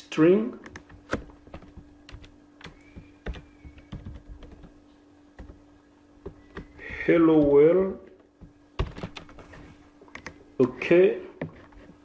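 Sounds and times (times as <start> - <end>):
typing on computer keyboard: 0.6 - 4.8.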